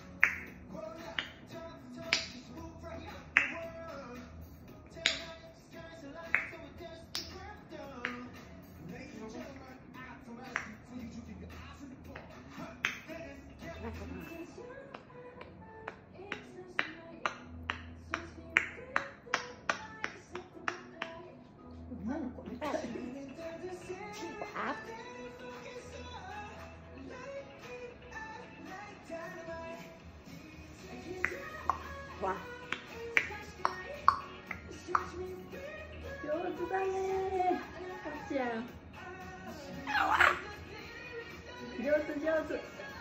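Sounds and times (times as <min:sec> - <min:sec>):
faint music from a television: 0:00.0 - 0:43.0
sharp snapping clicks: 0:02.0 - 0:02.5, 0:04.9 - 0:05.4, 0:06.3 - 0:07.4, 0:08.0 - 0:08.4, 0:10.4 - 0:10.8, 0:31.2 - 0:35.2.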